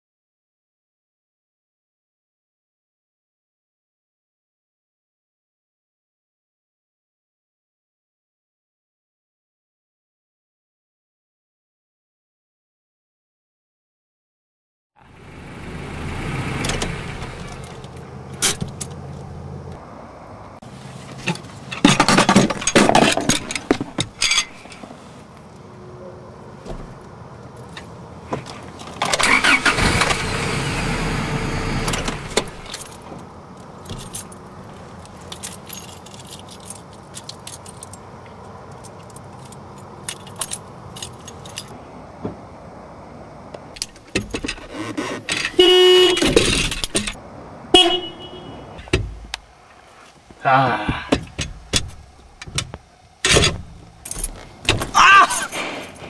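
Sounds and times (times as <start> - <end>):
keys jangling: 22.6 - 24.9, 32.6 - 41.8, 53.3 - 56.0.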